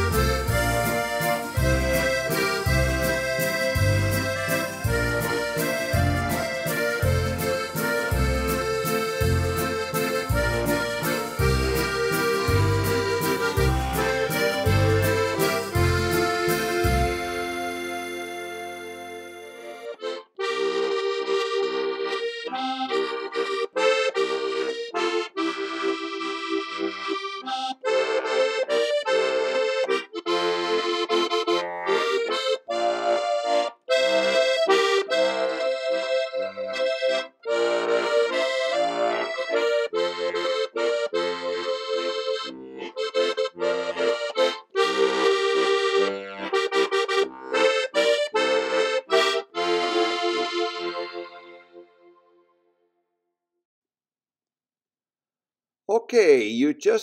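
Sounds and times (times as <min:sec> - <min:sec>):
button accordion playing a tune: 0:00.0 - 0:52.5.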